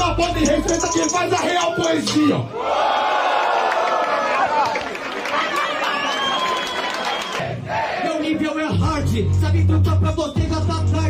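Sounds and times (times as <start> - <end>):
crowd shouting and cheering: 0.3 - 8.8.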